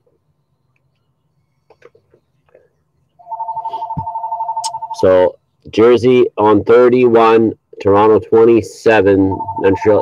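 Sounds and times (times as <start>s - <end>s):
electronic telephone ringing: 3.2s - 5.1s, 9.2s - 10.0s.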